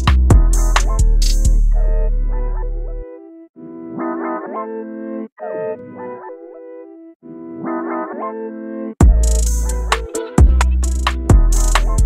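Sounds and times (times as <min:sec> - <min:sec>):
plucked guitar melody loop: 0:00.0 - 0:08.4, 0:09.0 - 0:12.0.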